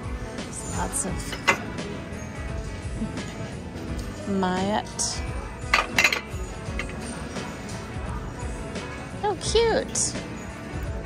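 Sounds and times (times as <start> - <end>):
background music: 0.0 - 11.0
china plates clinking: 0.6 - 1.8, 5.6 - 7.2.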